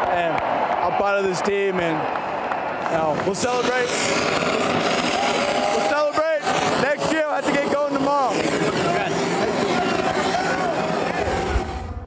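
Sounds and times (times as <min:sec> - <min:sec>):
crowd shouting and cheering: 0:00.0 - 0:12.0
loud shouts: 0:04.9 - 0:07.3, 0:08.6 - 0:11.6.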